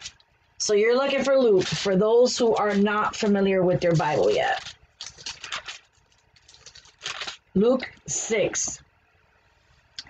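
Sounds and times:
paper pages turning: 0:01.1 - 0:07.5.

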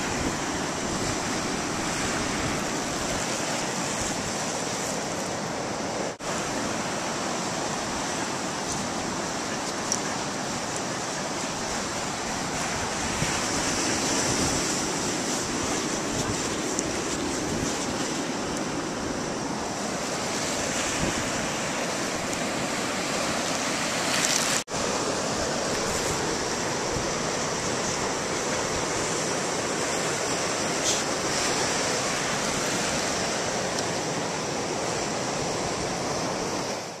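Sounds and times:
ocean surf: 0:00.0 - 0:37.0
wind on microphone: 0:07.8 - 0:24.6.

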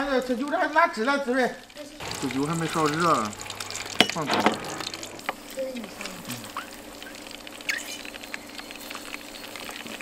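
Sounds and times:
food deep-frying in hot oil: 0:00.0 - 0:10.0.

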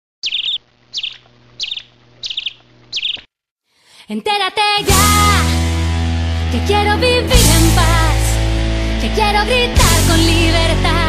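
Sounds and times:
bird chirping with trill: 0:00.2 - 0:03.3.

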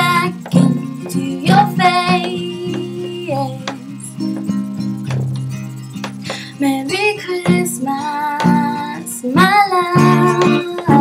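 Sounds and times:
woman singing: 0:00.0 - 0:04.2, 0:06.2 - 0:11.0
guitar strumming: 0:00.0 - 0:11.0.

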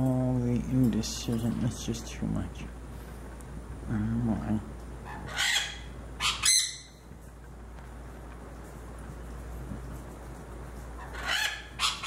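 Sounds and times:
parrot squawking: 0:05.0 - 0:07.0, 0:11.0 - 0:12.0.

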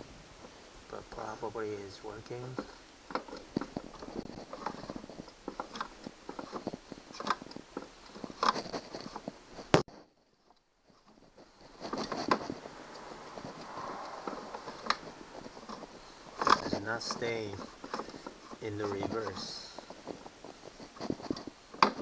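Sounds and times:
hard plastic knocks and rubbing: 0:10.9 - 0:22.0.

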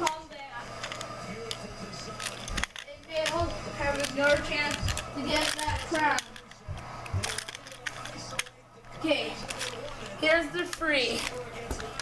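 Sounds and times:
game tiles clicking on carpet: 0:00.8 - 0:08.6.

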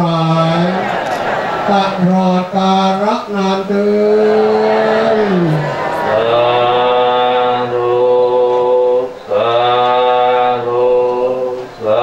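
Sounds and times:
men chanting in long notes: 0:00.0 - 0:12.0.

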